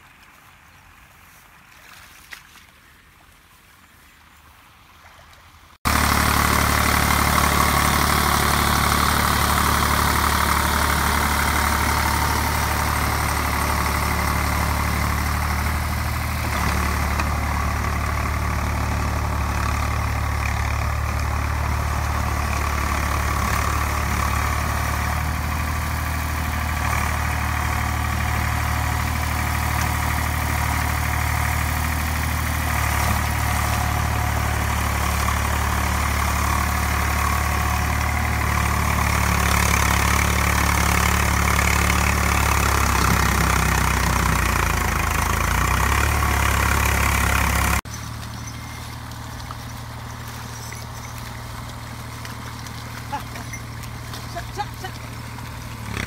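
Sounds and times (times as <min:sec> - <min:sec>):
tractor diesel engine droning: 0:05.8 - 0:56.0.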